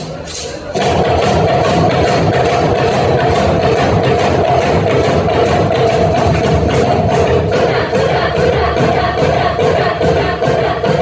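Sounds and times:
hand drums beating: 0.0 - 11.0
girls singing together: 0.9 - 11.0.

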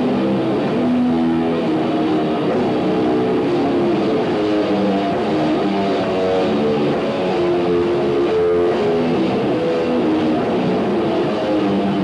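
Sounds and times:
distorted electric guitar chords: 0.0 - 12.0
heavy metal band playing: 0.0 - 12.0.

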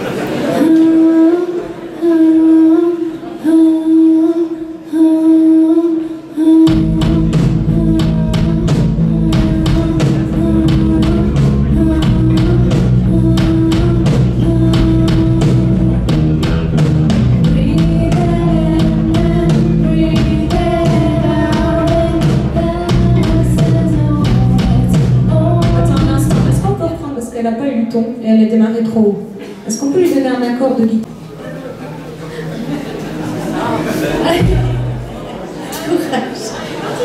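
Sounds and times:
woman singing: 0.6 - 16.3, 17.4 - 28.0
rock band playing: 6.7 - 26.9, 34.2 - 35.4.

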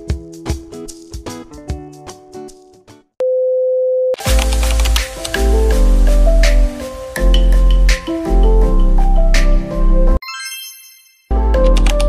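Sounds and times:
background music with plucked notes: 0.0 - 3.0, 4.2 - 10.7, 11.3 - 12.0.

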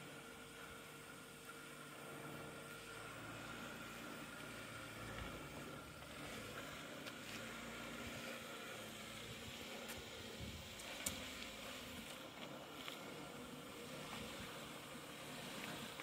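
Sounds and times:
faint engine running at low revs: 0.0 - 16.0.

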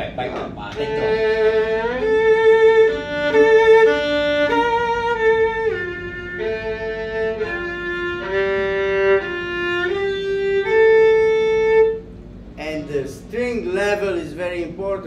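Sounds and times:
solo violin bowed: 0.8 - 12.1.

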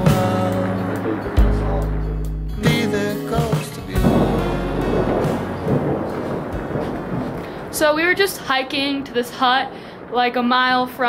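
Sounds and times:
thunder clap rumbling: 0.0 - 11.0
hail and rain: 4.0 - 11.0.

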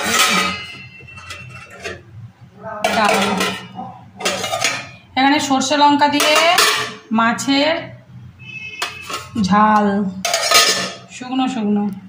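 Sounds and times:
metal bowls and lids clattering: 0.0 - 2.2, 2.8 - 7.5, 8.7 - 11.5.

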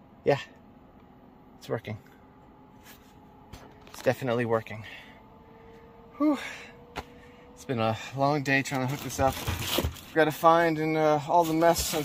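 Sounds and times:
air conditioner humming: 0.0 - 12.0
man exhaling: 6.2 - 6.8.

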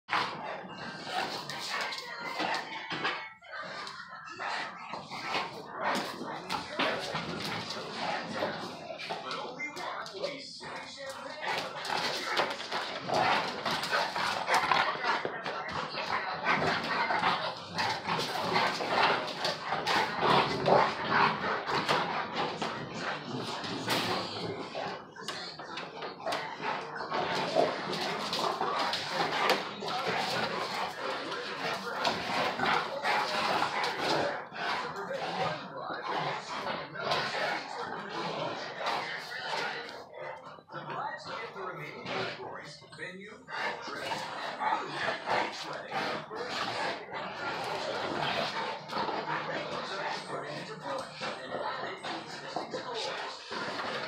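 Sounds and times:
dogs growling: 0.0 - 54.0
dogs barking: 43.4 - 54.0.

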